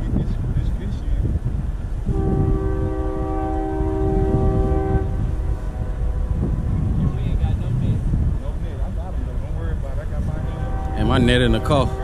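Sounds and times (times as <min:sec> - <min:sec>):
steady low rumble: 0:00.0 - 0:12.0
train horn chord: 0:02.1 - 0:07.2, 0:10.3 - 0:12.0.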